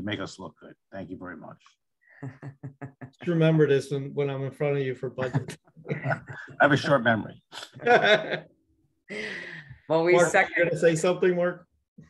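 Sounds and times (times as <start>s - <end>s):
person laughing: 2.2s - 3.2s, 5.2s - 7.0s, 7.6s - 8.4s
breathy sigh: 9.1s - 9.8s.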